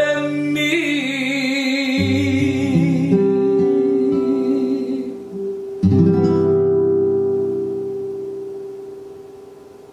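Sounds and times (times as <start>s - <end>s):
strummed classical guitar chord: 1.8s - 9.7s.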